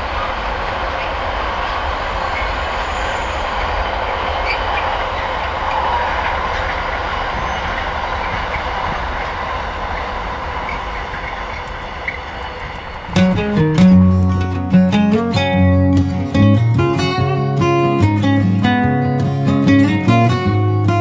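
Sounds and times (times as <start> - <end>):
freight train rumbling on rails: 0.0 - 21.0.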